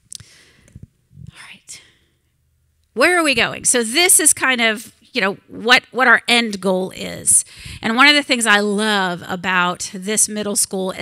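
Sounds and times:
woman's breathy whispering vocals: 1.2 - 1.9.

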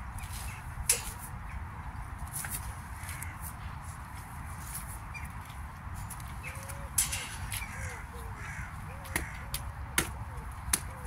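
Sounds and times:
crows cawing: 3.0 - 3.5, 7.5 - 9.6.

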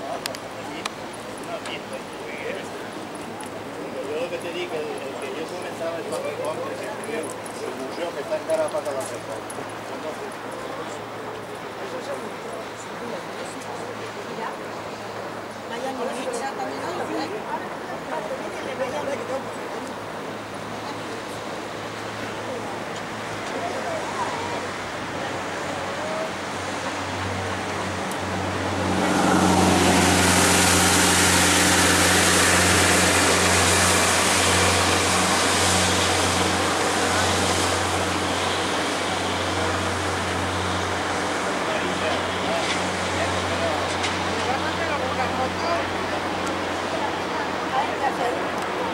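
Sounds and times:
people talking: 0.0 - 48.9
road traffic engine and tyre noise: 0.0 - 48.9
low engine hum: 18.8 - 48.9.

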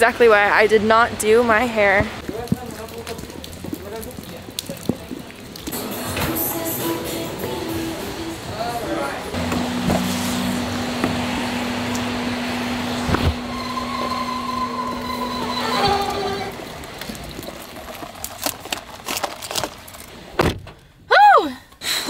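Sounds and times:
steady hum: 5.8 - 16.7.

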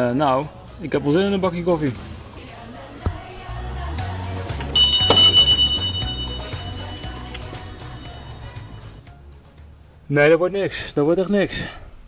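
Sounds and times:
background music: 0.0 - 11.1
doorbell ringing: 4.8 - 8.3.

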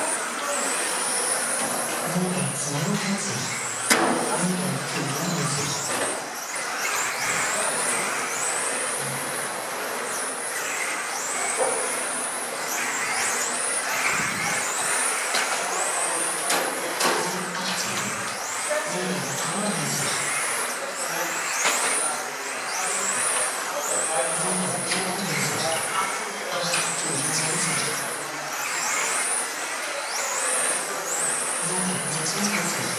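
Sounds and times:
electric motors whining: 0.0 - 32.9.

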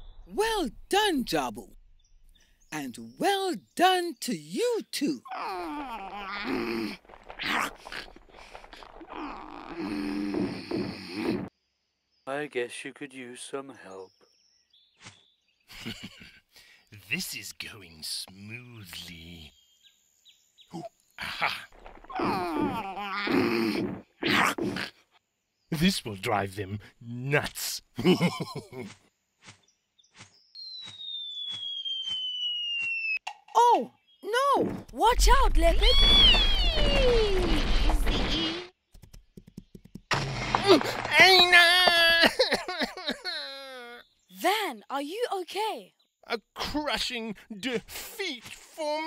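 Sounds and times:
cartoon voice straining: 5.2 - 8.0, 21.3 - 24.9, 33.6 - 38.7
boulder rumble: 6.1 - 11.5, 21.6 - 22.8, 34.6 - 38.6, 40.0 - 41.9
loud grunt: 20.8 - 24.9
cartoon crash: 35.7 - 38.7.

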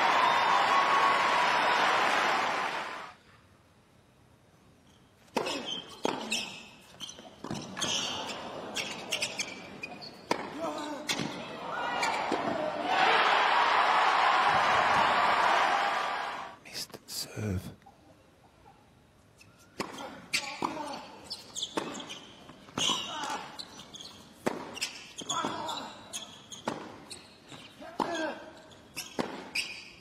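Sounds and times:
crowd applauding and cheering: 0.0 - 3.2, 12.9 - 16.6.

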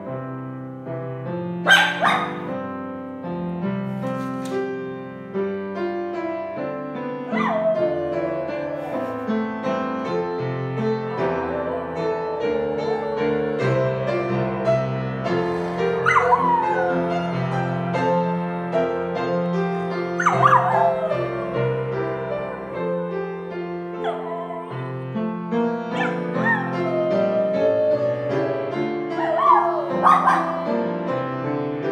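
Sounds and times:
piano playing: 0.0 - 31.9
dog howling: 1.7 - 2.5, 7.3 - 9.7, 10.7 - 18.4, 20.2 - 25.1, 26.0 - 31.1
dog yelp: 1.7 - 2.5, 7.3 - 9.3, 16.0 - 17.8, 20.2 - 23.0, 24.0 - 25.0, 26.0 - 28.2, 29.1 - 30.8.

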